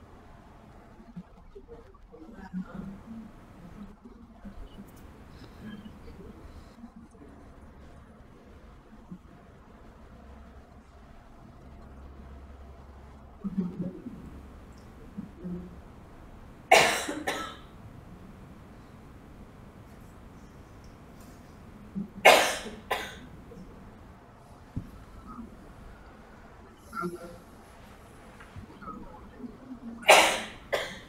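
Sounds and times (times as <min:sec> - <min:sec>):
person coughing: 0:16.7 - 0:17.6, 0:22.3 - 0:23.2, 0:30.0 - 0:31.0.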